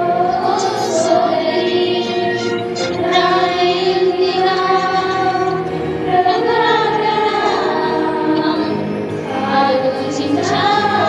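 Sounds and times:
small group singing church song: 0.0 - 11.0.

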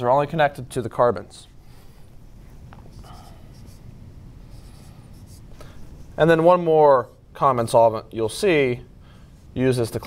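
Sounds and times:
marker writing on whiteboard: 2.8 - 3.9, 4.5 - 6.5.

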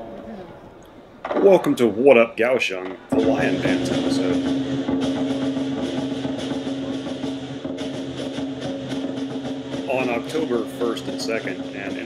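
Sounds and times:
drum cymbals and gong percussion: 2.7 - 12.0.

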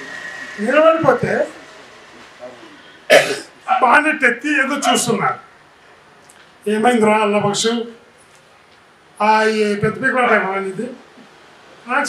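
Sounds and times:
man speaking: 0.6 - 1.6, 2.2 - 5.5, 6.6 - 8.0, 9.2 - 11.0
man clearing his throat: 3.1 - 3.5.

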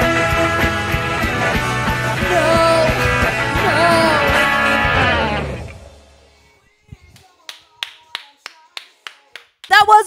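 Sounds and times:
backing track music: 0.0 - 7.4
woman talking loudly: 2.3 - 4.4, 9.7 - 10.0
person clapping hands: 7.0 - 9.9.

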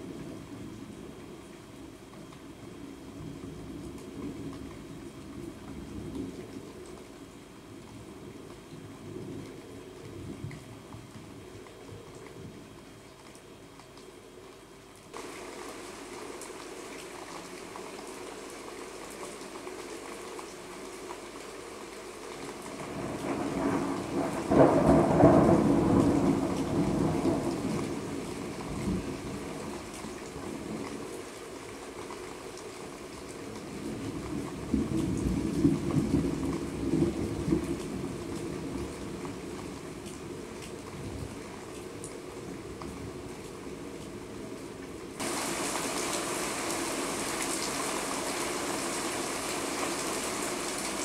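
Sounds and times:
steady rain: 0.0 - 51.0
thunder rumbling: 22.8 - 29.9.

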